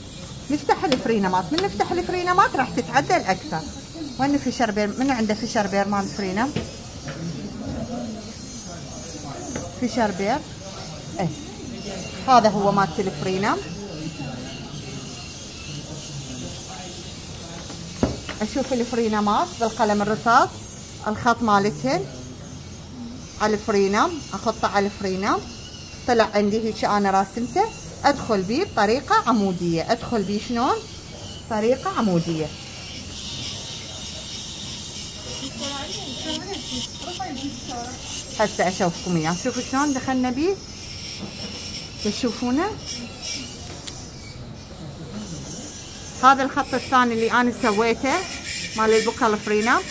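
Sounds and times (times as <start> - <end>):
faint voices talking: 0.0 - 49.9
faint background voices: 41.2 - 49.9.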